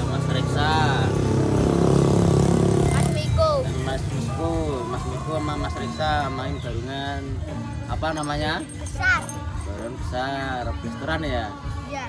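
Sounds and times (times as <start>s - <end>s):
vehicle engine running: 0.0s - 5.1s.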